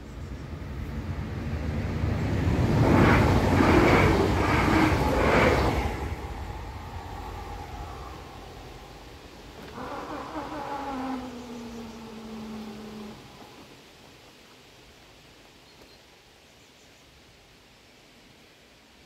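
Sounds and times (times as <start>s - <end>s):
electric train clattering: 1.0s - 8.0s
barrier drive whining: 4.3s - 13.6s.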